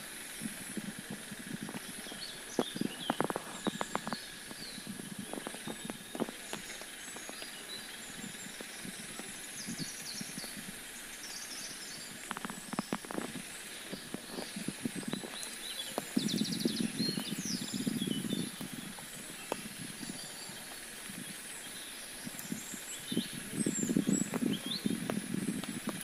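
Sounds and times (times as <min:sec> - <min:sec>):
high rapid chirping calls: 0:00.0 - 0:26.0
large raindrops ticking: 0:00.0 - 0:26.0
rain hissing: 0:00.0 - 0:26.0.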